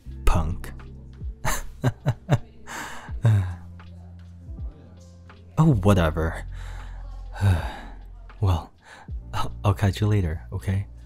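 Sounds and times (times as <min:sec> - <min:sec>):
soft lo-fi music: 0:00.0 - 0:11.0
man laughing breathily: 0:01.4 - 0:03.7.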